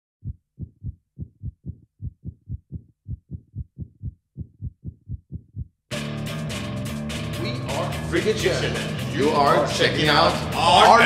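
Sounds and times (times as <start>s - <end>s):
heartbeat thumps: 0.2s - 5.8s
loud music: 5.9s - 11.0s.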